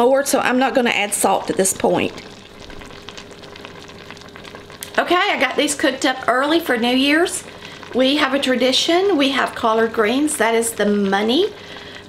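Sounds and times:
greens sizzling in a pot: 0.0 - 12.0
low steady hum: 0.0 - 12.0.

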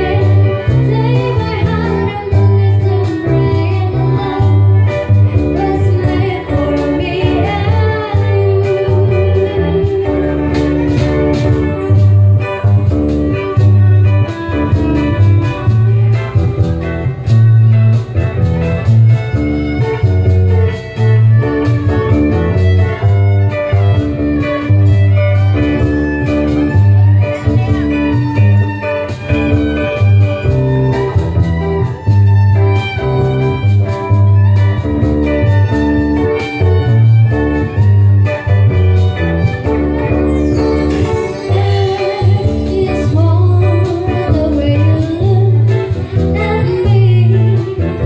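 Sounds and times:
cajon rhythm: 0.0 - 48.0
plucked string melody: 0.0 - 48.0
violin: 0.0 - 48.0.

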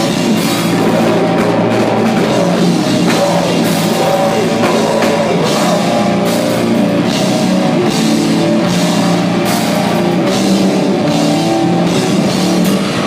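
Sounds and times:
distorted electric guitars: 0.0 - 13.0
driving drum kit: 0.0 - 13.0
screamed vocals: 0.6 - 6.4.

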